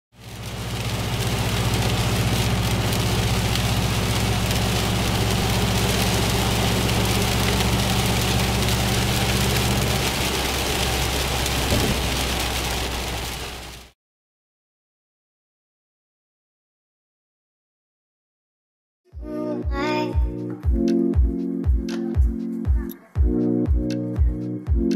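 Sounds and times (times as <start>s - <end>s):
rain on windscreen: 0.1s - 14.0s
car engine drone and road noise: 0.2s - 13.9s.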